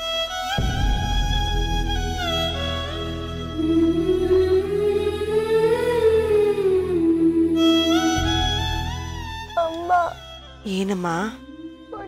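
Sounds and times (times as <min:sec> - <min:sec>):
background music with held notes: 0:00.0 - 0:12.0.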